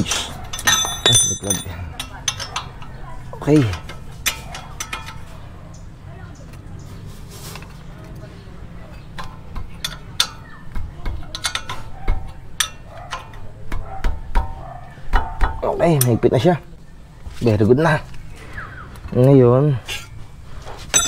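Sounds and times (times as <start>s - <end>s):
wrench clinking on bolts: 0.4s - 5.4s, 8.9s - 10.5s, 11.1s - 13.5s.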